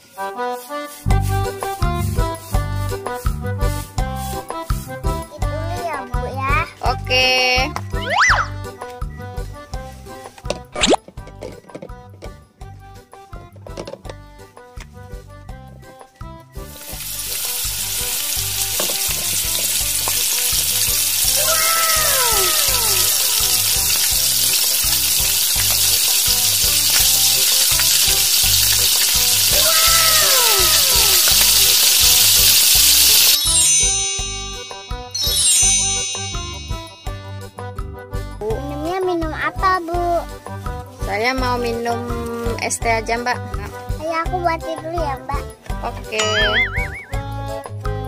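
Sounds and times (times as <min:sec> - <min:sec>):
light children's music: 0:00.0 - 0:48.0
frying sizzle hiss: 0:16.6 - 0:37.2
swooping tones: 0:46.2 - 0:47.2.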